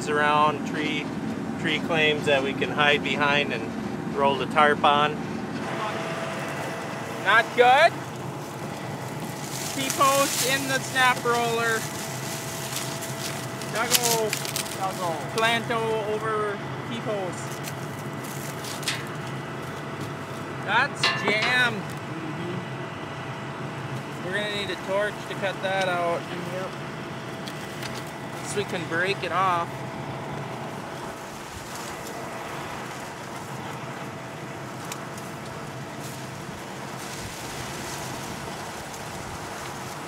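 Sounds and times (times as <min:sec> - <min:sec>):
combine harvester droning: 0:00.0 - 0:40.0
low machine hum: 0:00.0 - 0:40.0.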